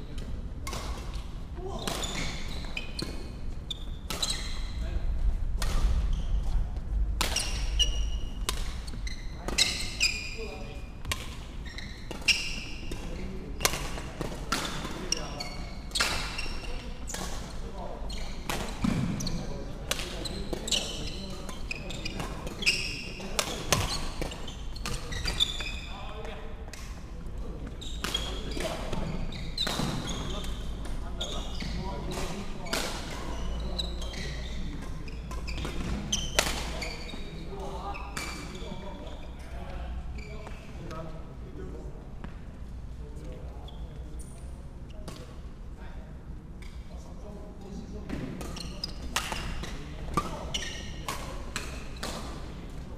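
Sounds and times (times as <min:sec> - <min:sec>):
shoe squeaks on wooden floor: 0:01.8 - 0:04.8, 0:07.3 - 0:11.0, 0:11.6 - 0:12.9, 0:15.0 - 0:16.9, 0:17.5 - 0:26.1, 0:27.8 - 0:39.5, 0:40.1 - 0:40.8, 0:48.5 - 0:51.1.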